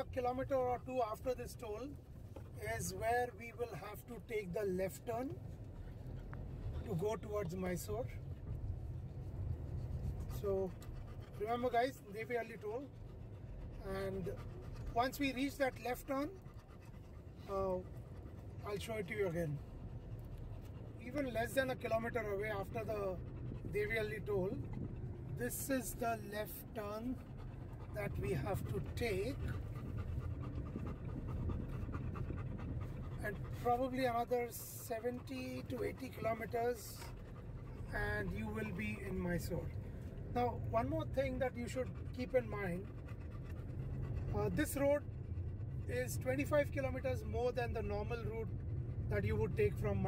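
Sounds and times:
car engine and road rumble: 0:00.0 - 0:50.0
dog panting: 0:00.0 - 0:50.0.

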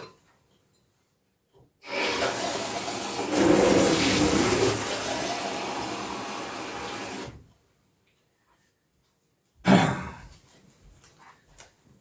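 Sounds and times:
running water rushing: 0:01.9 - 0:07.4.

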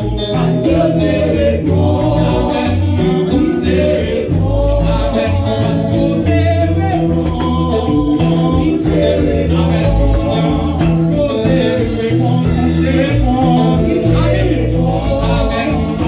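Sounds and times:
drum kit with cymbals: 0:00.0 - 0:16.0
electric bass low notes: 0:00.0 - 0:16.0
women singing together: 0:00.0 - 0:16.0.

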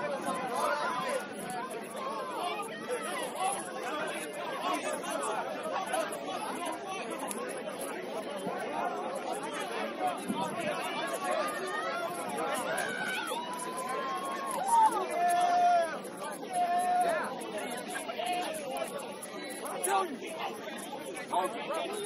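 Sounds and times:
overlapping chatter of people: 0:00.0 - 0:22.0.

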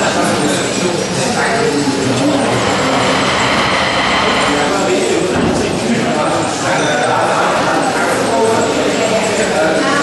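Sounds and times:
dense rushing noise: 0:01.4 - 0:06.6.

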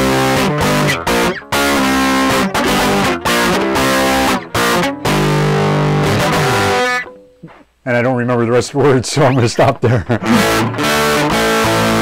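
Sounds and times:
overdriven electric guitar chord: 0:00.0 - 0:07.5, 0:10.3 - 0:12.0
man's voice: 0:07.8 - 0:10.2.

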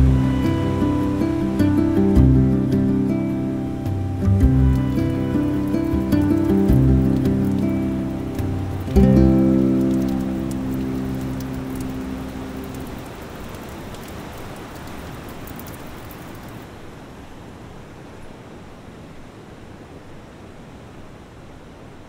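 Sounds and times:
sustained music chord: 0:00.0 - 0:13.0
soft hiss: 0:00.0 - 0:22.0
water drops falling: 0:03.8 - 0:16.6.

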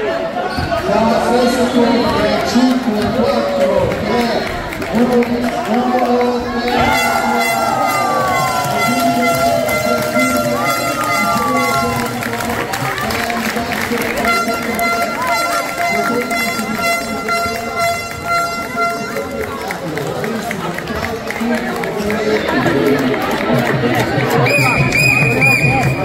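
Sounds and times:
crowd cheering and shouting: 0:00.0 - 0:26.0
steady horn tone: 0:06.7 - 0:20.0.

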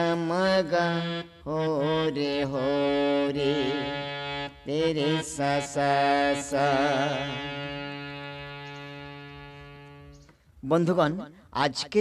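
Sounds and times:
harmonium sustained note: 0:00.0 - 0:11.0.

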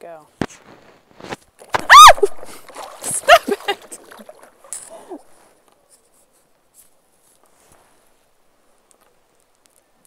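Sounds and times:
scratchy handling noise: 0:00.4 - 0:01.8.

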